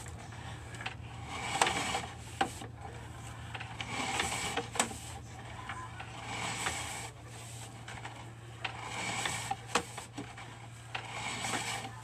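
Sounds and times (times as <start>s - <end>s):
cable reel rattling and clicking: 0.0s - 12.0s
steady low hum: 0.0s - 12.0s.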